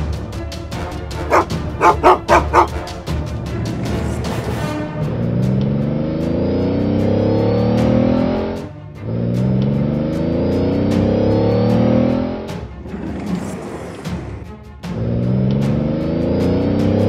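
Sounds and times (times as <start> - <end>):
car engine revving: 1.3 - 17.0.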